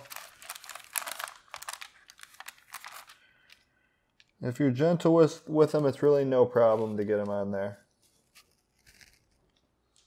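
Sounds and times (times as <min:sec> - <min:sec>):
parchment paper crinkling: 0:00.0 - 0:03.6, 0:06.0 - 0:10.0.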